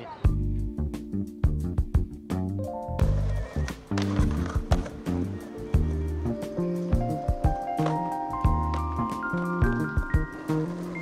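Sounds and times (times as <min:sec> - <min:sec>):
background music with bass line: 0:00.3 - 0:11.0
skateboard wheels rolling on stone: 0:03.0 - 0:11.0.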